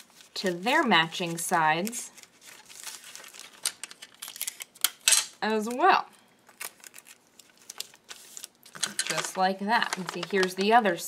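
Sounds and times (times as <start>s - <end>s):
paper rustling: 0.0s - 4.4s, 6.5s - 10.8s.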